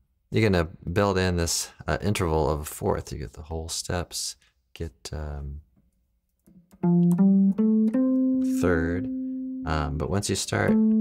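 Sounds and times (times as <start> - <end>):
guitar notes climbing: 6.5 - 11.0.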